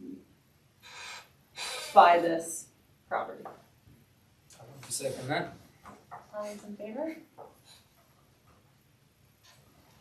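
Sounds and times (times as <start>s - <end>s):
person speaking: 4.5s - 5.6s.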